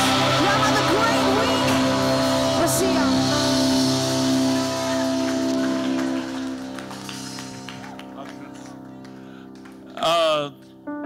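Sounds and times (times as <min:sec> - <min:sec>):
worship band music: 0:00.0 - 0:10.9.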